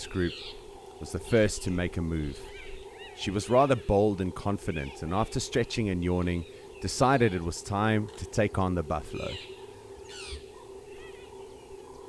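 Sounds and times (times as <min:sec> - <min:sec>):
birds calling and chirping: 0:00.0 - 0:12.0
steady low hum: 0:00.0 - 0:12.0.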